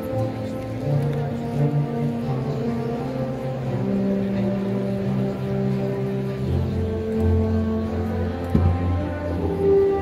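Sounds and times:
instrumental music with held notes: 0.0s - 10.0s.

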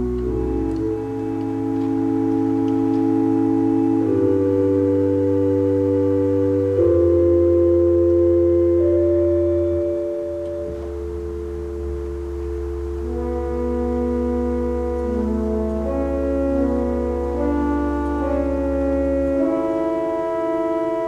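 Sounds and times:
pipe organ playing chords: 0.0s - 21.0s.

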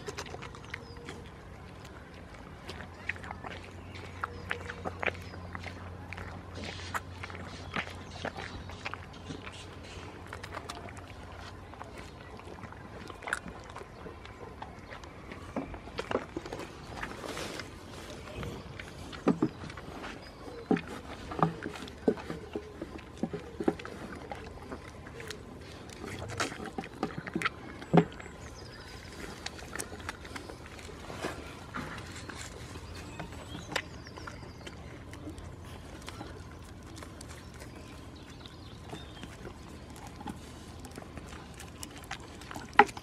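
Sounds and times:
goat chewing: 0.0s - 43.0s
rustling: 16.0s - 27.4s.

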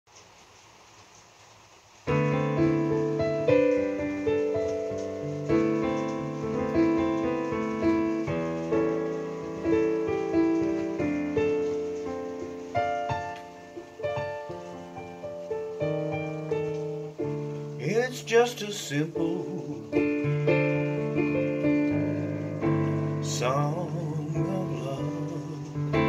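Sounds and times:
solo piano ballad: 0.1s - 26.0s.

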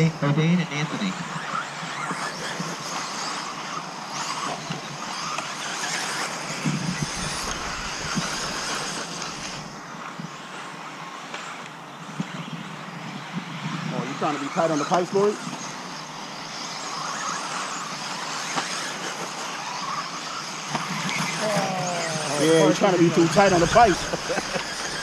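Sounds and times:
electric motors whining: 0.0s - 25.0s.

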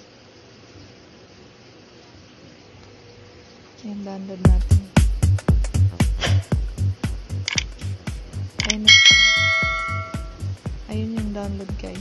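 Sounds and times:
background music with steady beat: 4.5s - 12.0s
bright bell-like chime: 8.9s - 10.4s.

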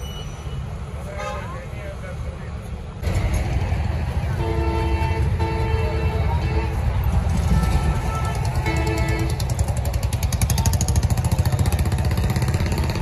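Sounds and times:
roadside traffic: 0.0s - 13.0s
vehicle horns: 4.2s - 9.8s.

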